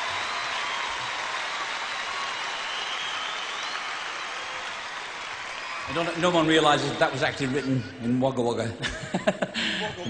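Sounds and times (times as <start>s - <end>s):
crowd applauding and cheering: 0.0s - 8.6s
whistles: 2.0s - 4.7s.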